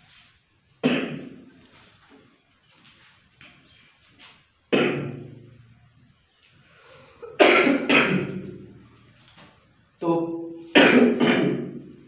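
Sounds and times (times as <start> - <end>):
man coughing: 7.2 - 8.4.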